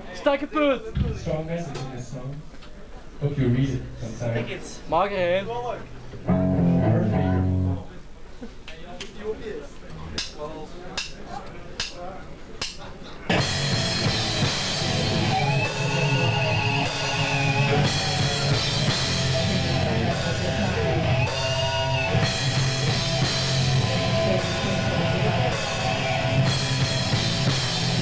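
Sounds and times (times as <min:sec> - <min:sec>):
hardcore band playing live: 0:05.8 - 0:07.9, 0:13.3 - 0:28.0.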